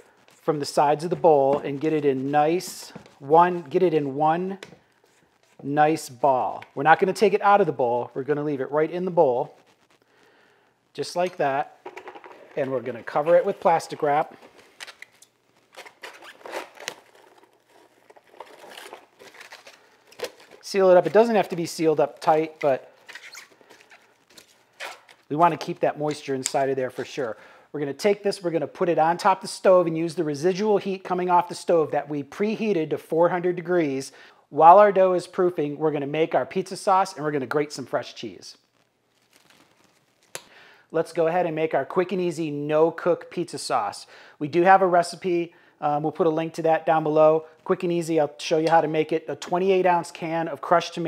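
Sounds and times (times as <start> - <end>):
plastic cling wrap crinkling: 0.0 - 8.2, 8.9 - 27.6, 38.5 - 40.5.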